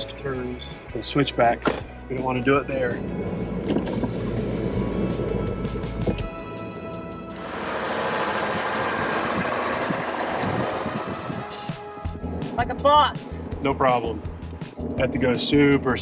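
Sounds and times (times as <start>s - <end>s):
background music: 0.0s - 16.0s
truck engine rumble: 1.9s - 16.0s
wind and road noise: 2.8s - 16.0s.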